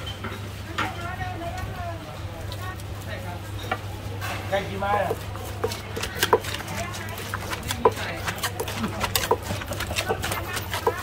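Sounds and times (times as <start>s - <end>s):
pestle knocking in clay mortar: 4.9s - 11.0s.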